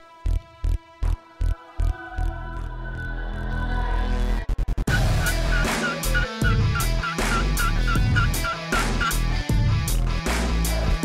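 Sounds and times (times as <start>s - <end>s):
background music with steady beat: 0.0s - 11.0s
turkey yelps: 4.9s - 9.2s.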